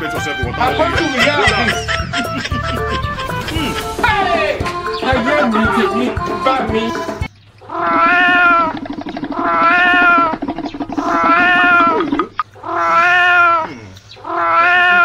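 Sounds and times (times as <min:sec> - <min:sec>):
cat-like wailing call: 0:07.7 - 0:15.0.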